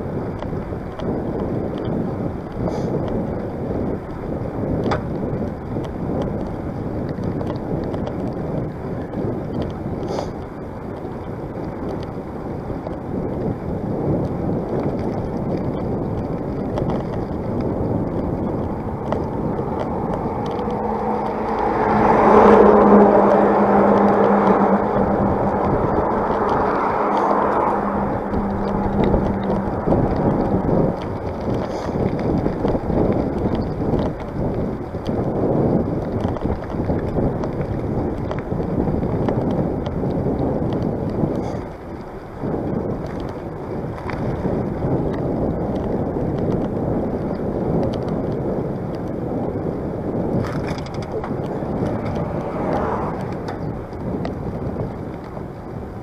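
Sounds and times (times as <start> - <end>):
tyre and road noise: 0.0 - 56.0
wind rushing over microphone: 0.0 - 56.0
motor vehicle passing: 14.6 - 48.2, 48.8 - 55.8.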